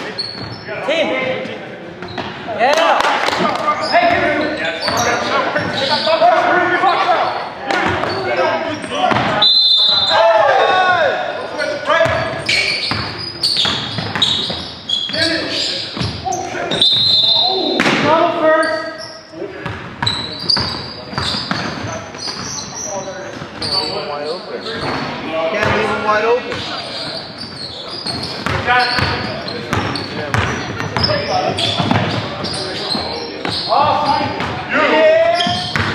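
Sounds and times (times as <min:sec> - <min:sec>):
short high squeaks: 0:00.0 - 0:00.7, 0:12.4 - 0:17.6, 0:26.6 - 0:33.8
players shouting: 0:02.6 - 0:12.9, 0:33.2 - 0:35.9.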